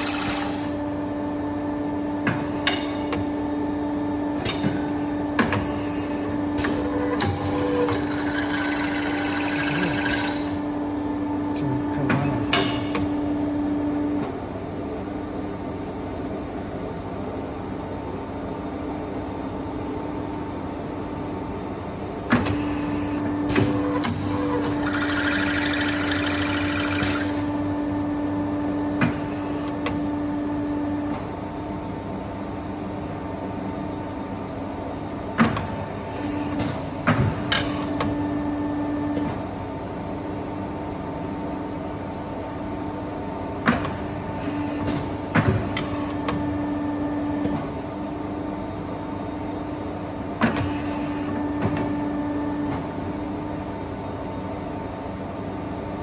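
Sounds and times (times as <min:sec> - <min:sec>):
machine motor hum: 0:00.0 - 0:17.1, 0:18.7 - 0:56.0.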